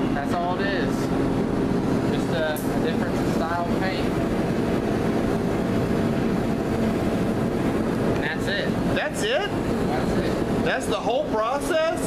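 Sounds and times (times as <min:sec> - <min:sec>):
extraction fan air rushing: 0:00.0 - 0:12.0.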